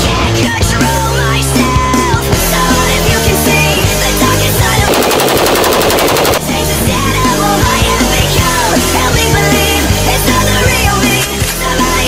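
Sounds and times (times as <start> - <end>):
rock music: 0.0 - 12.0
automatic rifle fire: 4.9 - 6.4.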